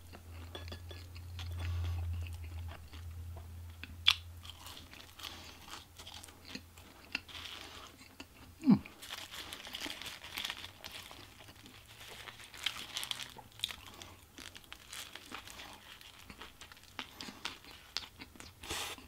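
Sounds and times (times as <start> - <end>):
chewing fries: 0.0 - 19.0.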